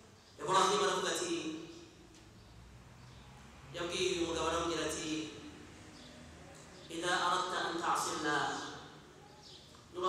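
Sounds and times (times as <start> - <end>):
man speaking: 6.9 - 8.9.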